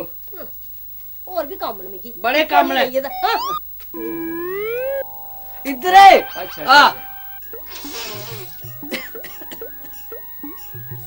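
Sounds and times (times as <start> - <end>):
background music: 3.2 - 11.0.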